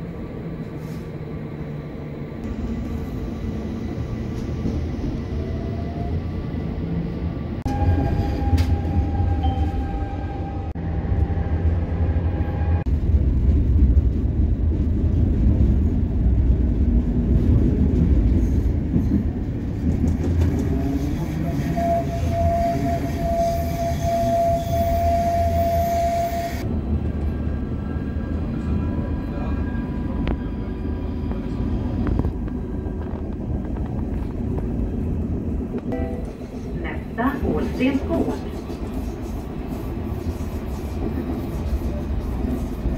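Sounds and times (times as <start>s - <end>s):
tram wheels rumbling on rails: 0.0s - 42.9s.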